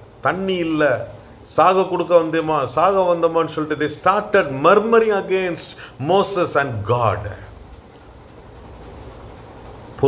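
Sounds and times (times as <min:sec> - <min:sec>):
even hiss: 0:00.2 - 0:07.6
low rumble: 0:06.4 - 0:10.0.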